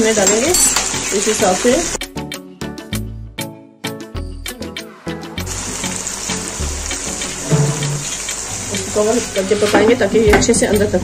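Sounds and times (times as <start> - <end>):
food sizzling in hot oil: 0.0 - 2.0, 5.4 - 11.0
background music: 0.0 - 11.0.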